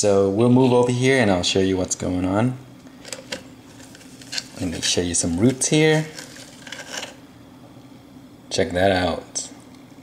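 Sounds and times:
low steady hum: 0.0s - 10.0s
leaves rubbing against plastic bottle: 3.7s - 7.2s.

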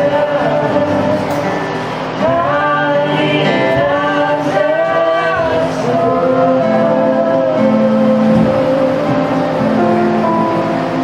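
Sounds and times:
acoustic guitar: 0.0s - 11.0s
people singing long notes: 0.0s - 11.0s.

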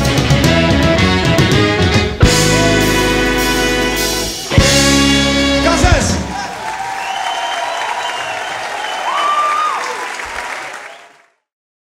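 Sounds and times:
audience applauding and cheering: 2.2s - 4.6s, 5.3s - 11.5s
audience shouts: 5.7s - 11.1s.

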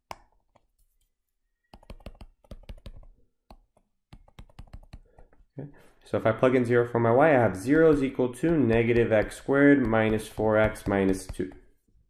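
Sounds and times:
stylus tapping on tablet screen: 1.7s - 5.4s, 7.5s - 11.8s.

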